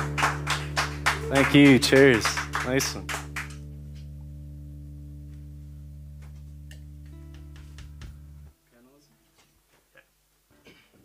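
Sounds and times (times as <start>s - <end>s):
low steady musical drone: 0.0s - 8.7s.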